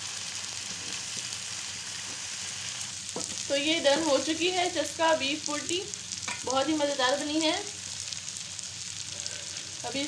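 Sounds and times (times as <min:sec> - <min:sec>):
meat sizzling on a hot pan: 0:00.0 - 0:10.0.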